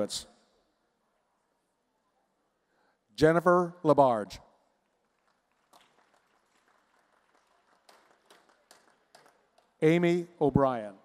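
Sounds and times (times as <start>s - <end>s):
faint hand clapping: 4.8s - 9.8s.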